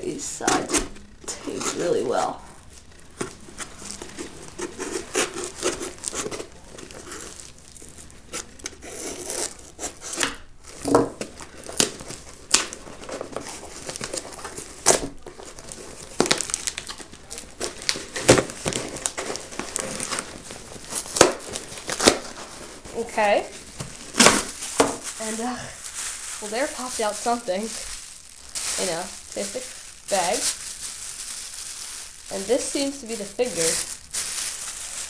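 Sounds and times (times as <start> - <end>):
plastic wrapping crinkling: 0.0 - 35.0
packing tape tearing: 3.2 - 35.0.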